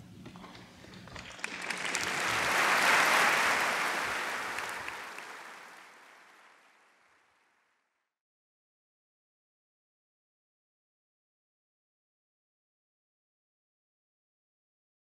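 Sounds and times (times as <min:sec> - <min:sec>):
audience applauding: 0:01.1 - 0:07.2.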